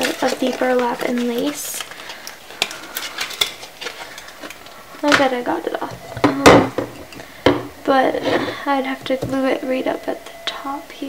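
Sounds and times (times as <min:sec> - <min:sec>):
paper and ribbon rustling: 0:00.0 - 0:05.4.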